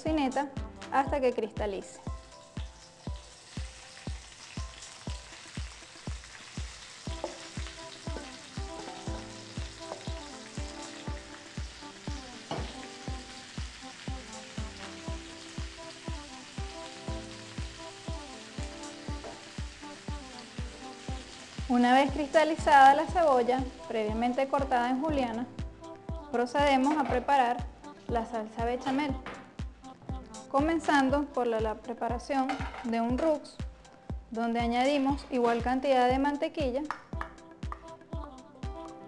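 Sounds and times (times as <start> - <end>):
background music with steady beat: 0.0 - 39.0
onion sizzling in frying pan: 2.1 - 25.4.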